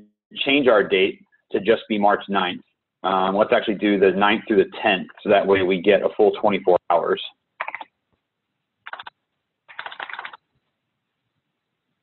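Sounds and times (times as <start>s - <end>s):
computer keyboard typing: 7.6s - 7.9s, 8.9s - 10.5s.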